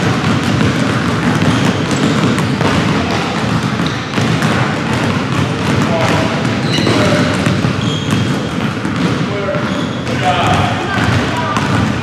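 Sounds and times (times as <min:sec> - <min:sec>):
basketballs bouncing on wood floor: 0:00.0 - 0:12.0
shoe squeaks: 0:01.2 - 0:02.7, 0:03.8 - 0:04.2, 0:06.6 - 0:10.5.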